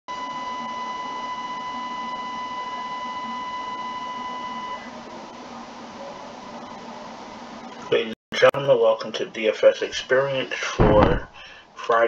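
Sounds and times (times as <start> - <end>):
electronic beep tone: 0.1 - 4.9
constant hiss: 4.8 - 12.0.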